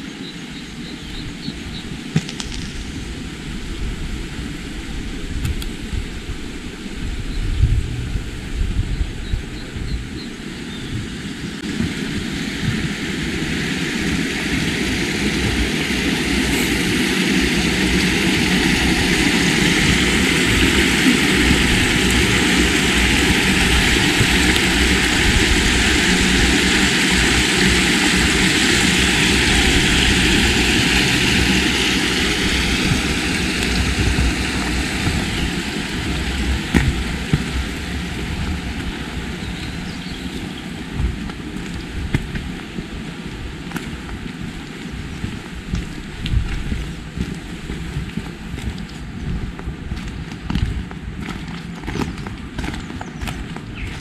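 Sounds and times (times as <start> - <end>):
aircraft engine drone: 0.0 - 54.0.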